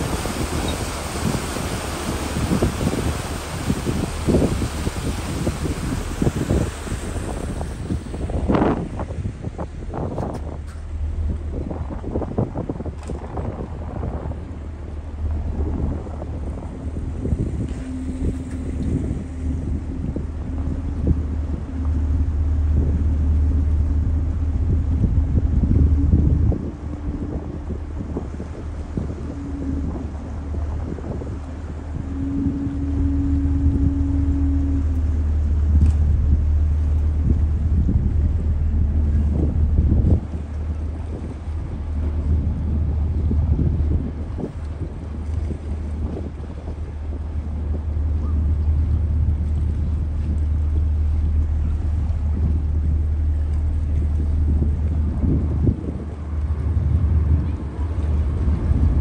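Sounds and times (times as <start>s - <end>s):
ship engine rumble: 0.0s - 59.0s
wind buffeting microphone: 0.0s - 59.0s.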